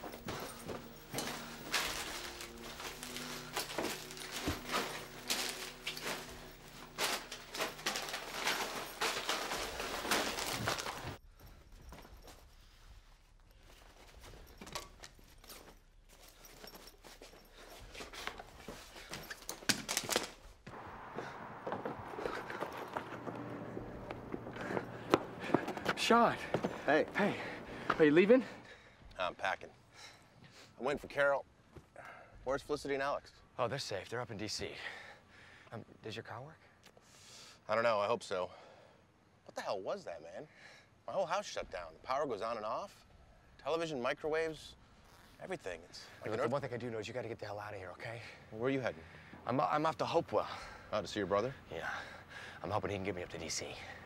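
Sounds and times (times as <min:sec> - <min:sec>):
footsteps: 0:00.0 - 0:29.2.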